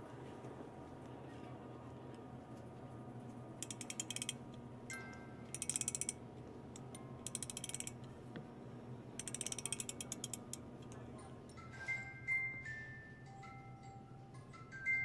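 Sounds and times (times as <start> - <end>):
music box ratchet clicking: 3.6 - 4.4, 5.5 - 6.2, 6.8 - 8.0, 9.2 - 11.0
faint music box chiming: 4.9 - 6.2, 11.4 - 15.0.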